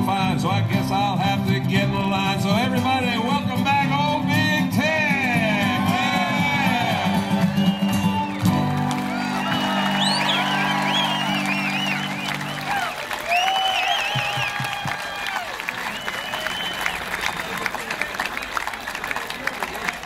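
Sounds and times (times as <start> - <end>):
band holding country chord: 0.0 - 15.3
crowd cheering and applauding: 5.2 - 20.0.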